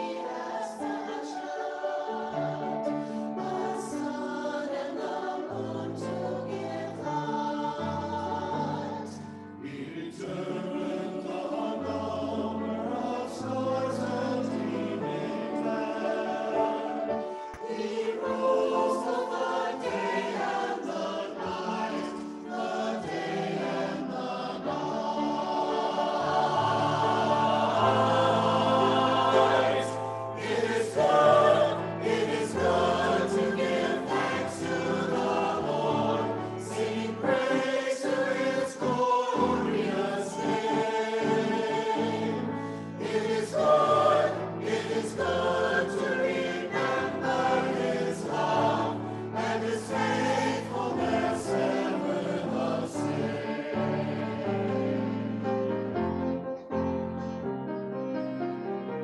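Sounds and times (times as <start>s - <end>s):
church choir singing: 0.0s - 59.0s.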